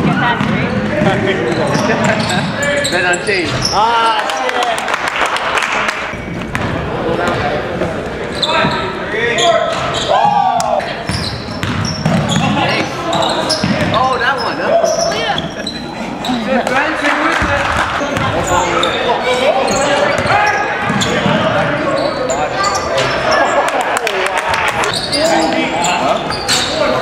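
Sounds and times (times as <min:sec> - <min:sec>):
basketball bouncing on hardwood floor: 0:00.0 - 0:01.2, 0:11.1 - 0:12.6.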